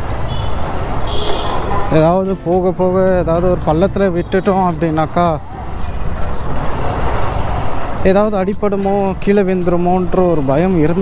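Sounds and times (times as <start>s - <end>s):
motorcycle riding rumble: 0.0s - 10.9s.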